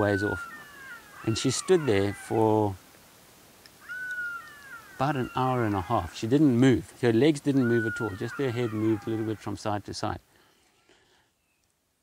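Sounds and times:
distant jackal call: 0.0s - 2.7s, 3.8s - 6.2s, 7.4s - 9.7s.

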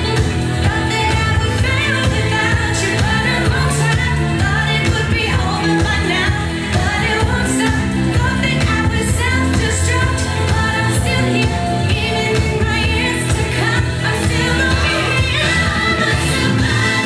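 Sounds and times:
dance music with singing: 0.0s - 17.0s.

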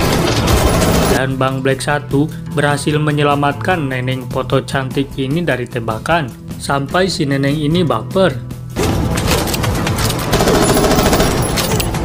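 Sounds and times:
rapid automatic gunfire: 0.0s - 1.2s, 10.0s - 11.6s.

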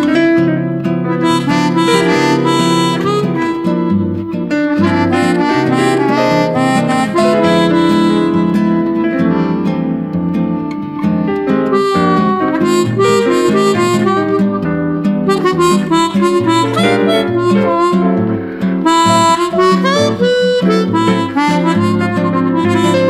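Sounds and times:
guitar accompaniment: 0.0s - 23.0s
harmonica melody: 0.0s - 23.0s.

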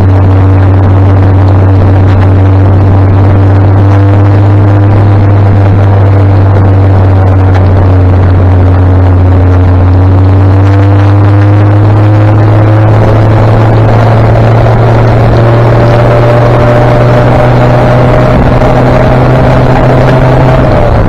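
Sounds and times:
vehicle engine running: 0.0s - 21.0s.

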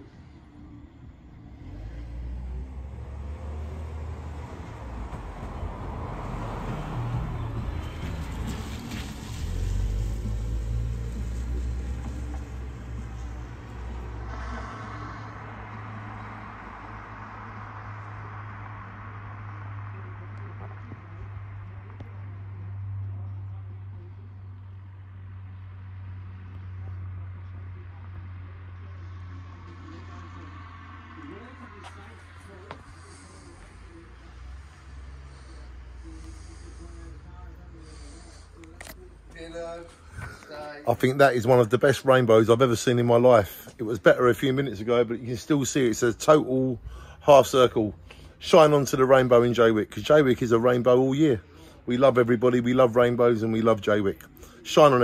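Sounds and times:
car passing by: 0.0s - 55.0s.

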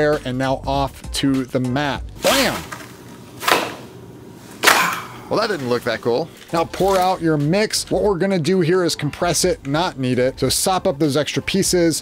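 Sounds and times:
baking mat swishing: 2.2s - 4.8s.

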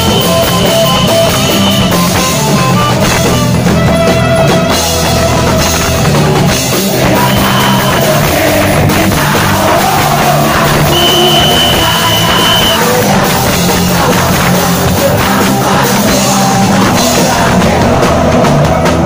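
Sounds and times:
punk rock band playing live: 0.0s - 19.0s.

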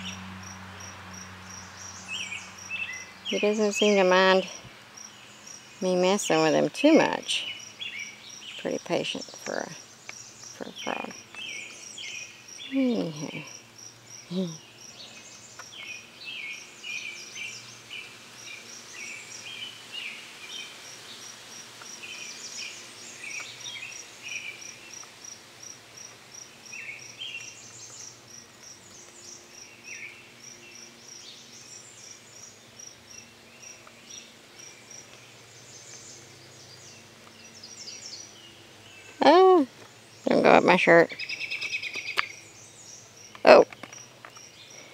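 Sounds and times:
birds chirping: 0.0s - 21.2s, 21.8s - 25.1s, 26.4s - 44.9s
insects chirping: 0.0s - 44.9s.

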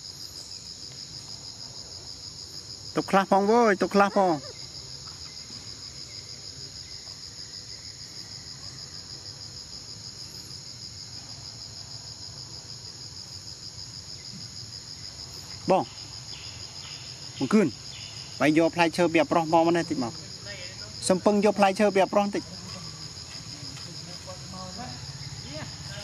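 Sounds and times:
insects chorus pulsing: 0.0s - 26.0s.

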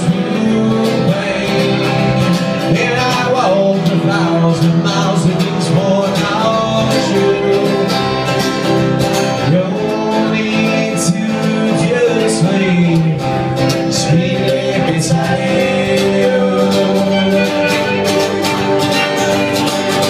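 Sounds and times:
person singing: 0.0s - 8.6s, 9.3s - 20.0s
strummed acoustic guitars: 0.0s - 20.0s
fiddle: 16.3s - 20.0s.

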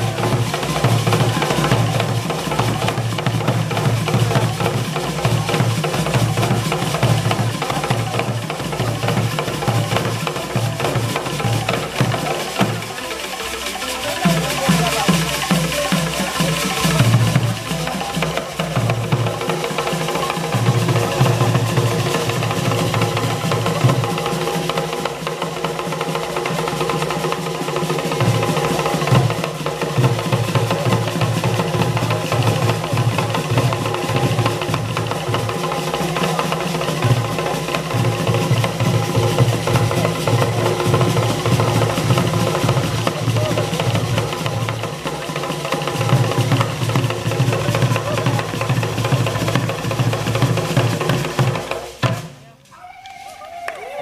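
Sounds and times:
hand drums beaten fast: 0.0s - 52.4s
wooden knocking percussion: 0.0s - 53.8s.

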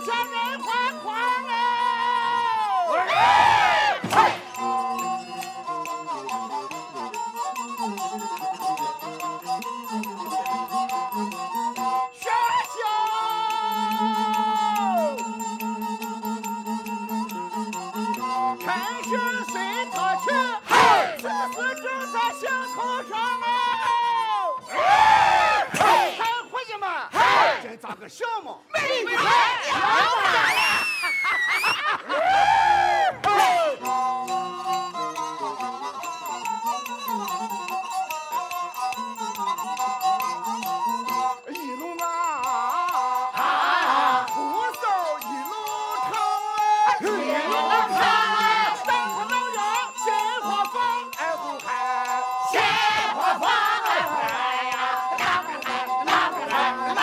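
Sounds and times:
bowed fiddle: 0.0s - 25.6s
performers shouting drawn-out calls: 1.6s - 4.6s, 20.6s - 21.2s, 24.7s - 26.3s, 27.1s - 27.7s, 28.8s - 30.5s
sharp clicks keeping time: 4.4s - 23.0s, 33.8s - 57.0s.

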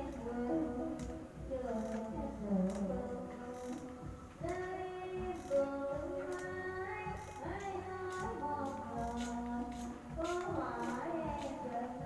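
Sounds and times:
high singing voice holding long notes: 0.0s - 12.0s.

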